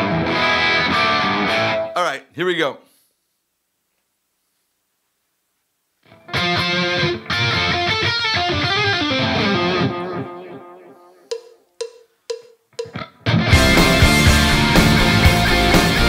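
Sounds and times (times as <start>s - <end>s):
rock music with guitar and drums: 0.0s - 2.0s, 6.2s - 10.6s, 12.8s - 16.0s
count-in beats: 11.3s - 13.0s.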